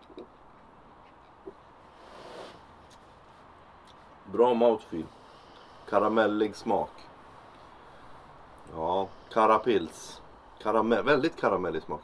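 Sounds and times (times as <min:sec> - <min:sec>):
person sipping: 0:01.5 - 0:03.0.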